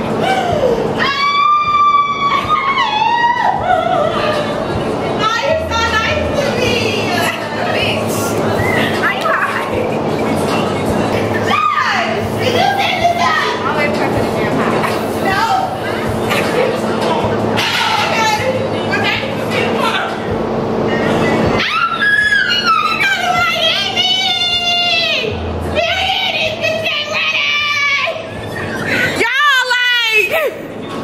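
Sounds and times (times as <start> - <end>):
steady low hum: 0.0 - 31.0
women squealing and laughing: 0.1 - 4.8, 21.6 - 23.5, 27.4 - 30.7.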